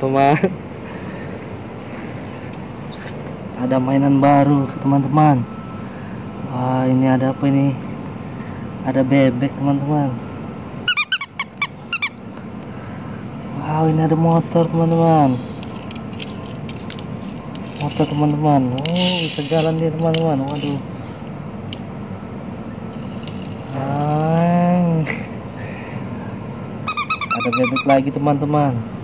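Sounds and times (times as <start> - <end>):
low background noise: 0.0 - 29.0
rubber duck toy squeaks: 10.9 - 12.2, 26.9 - 28.0.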